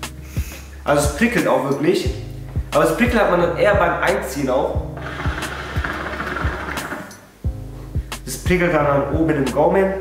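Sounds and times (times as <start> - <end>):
hookah water bubbling: 5.0 - 7.2.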